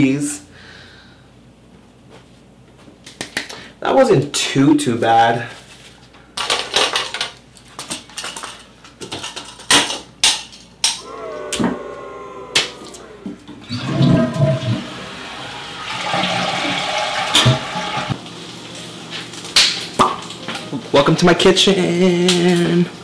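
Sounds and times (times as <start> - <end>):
toilet flushing: 12.8 - 18.2
toilet paper roll crackling: 15.8 - 22.9.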